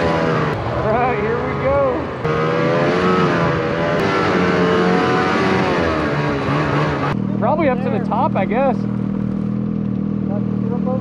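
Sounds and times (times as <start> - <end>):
snowmobile engine idling: 7.2 - 11.0.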